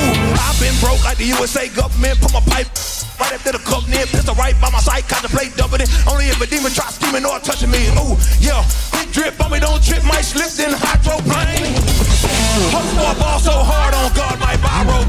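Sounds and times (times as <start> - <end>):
electric guitar: 0.0 - 0.8
drums: 0.0 - 15.0
heavy bass notes: 0.0 - 15.0
man rapping into a microphone: 0.0 - 15.0.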